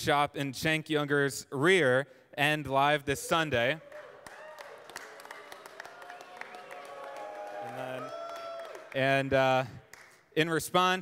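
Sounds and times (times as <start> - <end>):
scattered clapping: 4.2 - 10.2.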